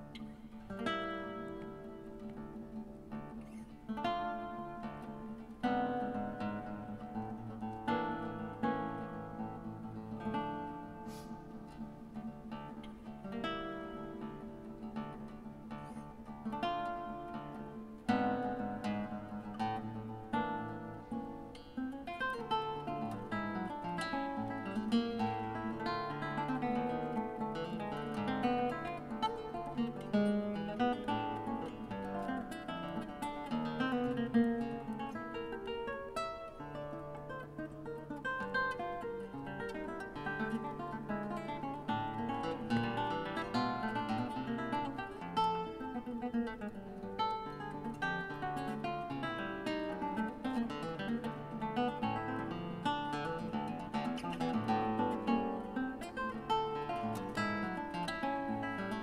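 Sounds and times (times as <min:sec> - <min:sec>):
classical guitar fingerstyle: 0:00.0 - 0:59.0.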